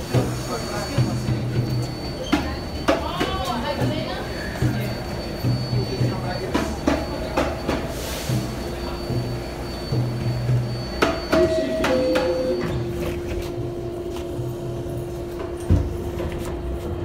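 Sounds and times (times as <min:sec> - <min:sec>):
two-note door chime: 0:11.0 - 0:13.1.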